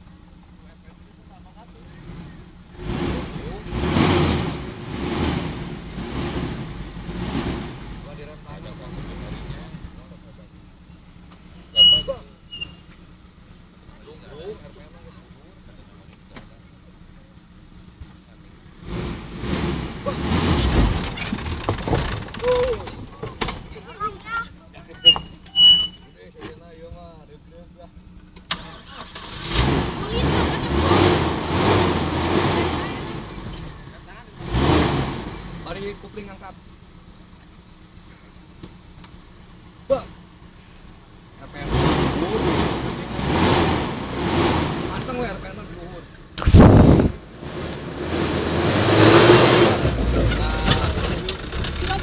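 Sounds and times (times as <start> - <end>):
vehicle engine revving and idling: 0.0 - 52.0.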